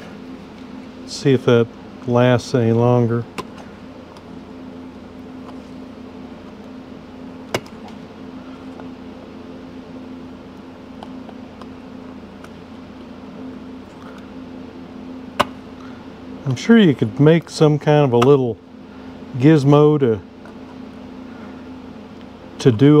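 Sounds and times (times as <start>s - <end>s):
steady background hum: 0.0s - 23.0s.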